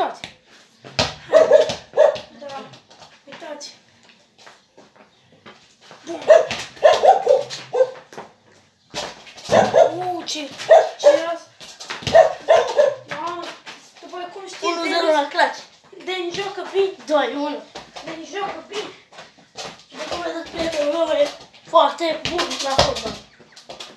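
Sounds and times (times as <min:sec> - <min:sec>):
dog barking: 0:01.3 - 0:02.3, 0:06.2 - 0:08.0, 0:09.5 - 0:10.0, 0:10.7 - 0:11.3, 0:12.1 - 0:13.1.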